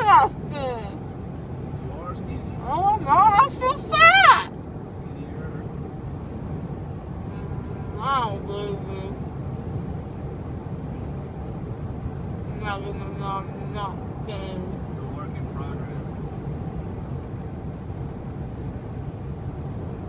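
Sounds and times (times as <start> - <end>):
car cabin road noise: 0.0 - 20.0.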